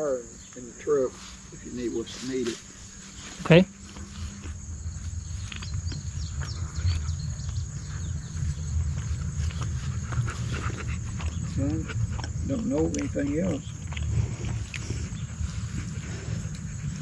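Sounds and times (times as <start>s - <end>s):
crickets chirring: 0.0s - 17.0s
low rumble: 2.6s - 17.0s.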